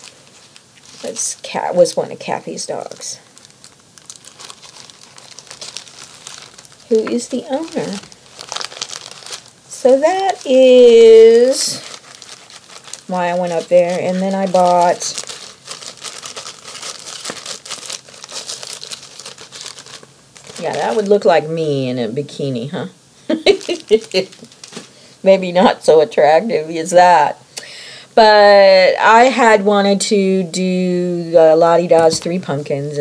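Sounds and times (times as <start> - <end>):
packaging crinkling: 0.0 - 21.4, 23.4 - 25.1.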